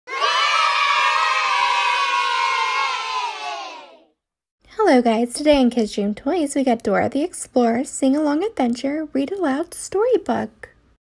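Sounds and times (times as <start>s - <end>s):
children cheering: 0.1s - 4.1s.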